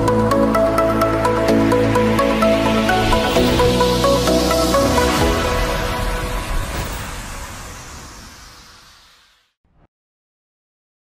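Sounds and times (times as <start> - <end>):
hissy electronic music swell: 0.0 - 9.5.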